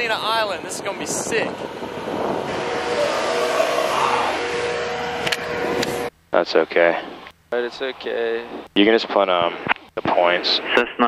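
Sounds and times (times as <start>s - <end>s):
engine running: 0.0s - 8.8s.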